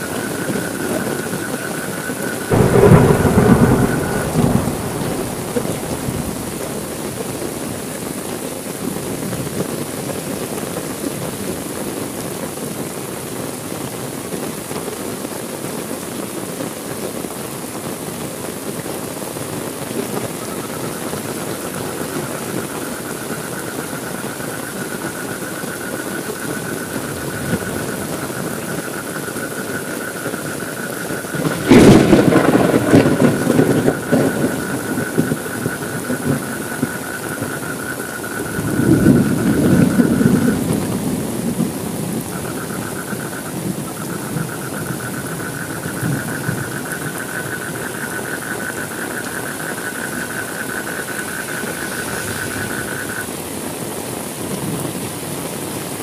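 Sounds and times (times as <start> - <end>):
thunder crack and rumble: 0.0 - 8.2, 20.7 - 29.0, 31.0 - 53.3
heavy rain: 0.0 - 56.0.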